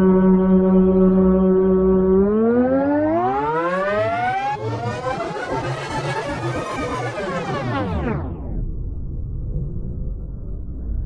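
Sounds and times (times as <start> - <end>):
rising siren-like tone: 0.0 - 5.8
music: 0.0 - 9.3.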